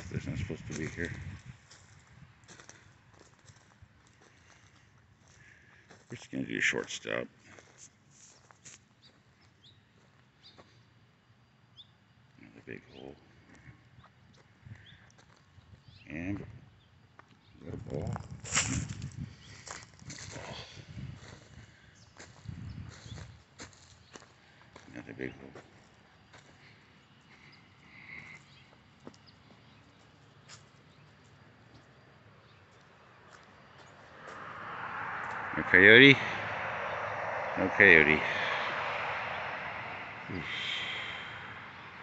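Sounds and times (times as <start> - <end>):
footsteps on wood-chip mulch: 0.5 - 6.3, 7.5 - 9.3, 17.9 - 25.0, 25.6 - 27.5, 28.3 - 34.4.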